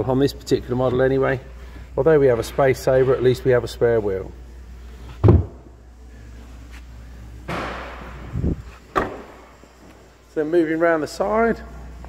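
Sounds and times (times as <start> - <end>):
boot floor cover thud: 5.2 - 5.6
tailgate shutting: 5.2 - 5.7, 7.5 - 9.5.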